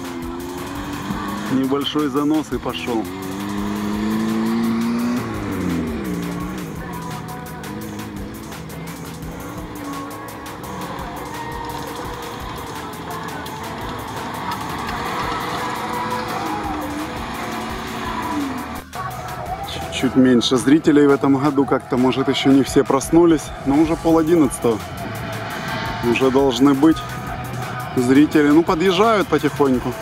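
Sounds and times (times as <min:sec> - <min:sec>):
music: 0:00.0 - 0:30.0
off-road engines revving: 0:00.0 - 0:30.0.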